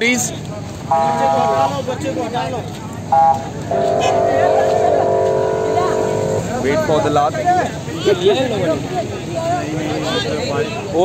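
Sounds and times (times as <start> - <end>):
high-pitched vehicle horn honk: 3.2 - 6.6
low vehicle horn held: 3.2 - 6.6.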